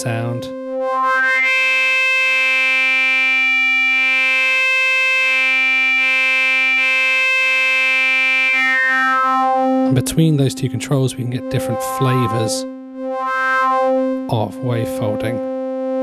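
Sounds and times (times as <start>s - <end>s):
sustained synthesizer note: 0.0s - 16.0s.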